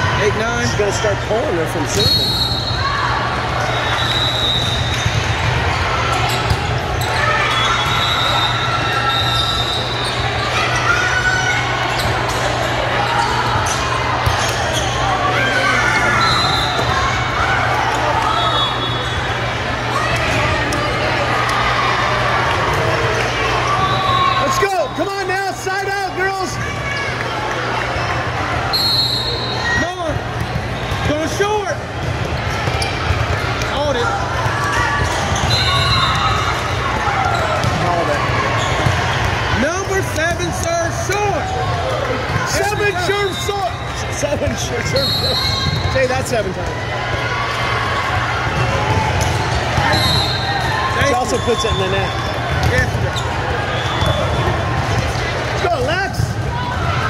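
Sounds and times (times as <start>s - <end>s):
volleyballs struck and bouncing: 30.1s - 40.7s.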